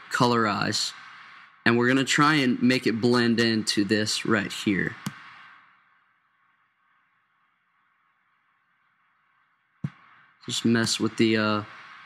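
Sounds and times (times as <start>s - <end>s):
faint microphone hiss: 0.0s - 12.0s
click: 5.0s - 5.2s.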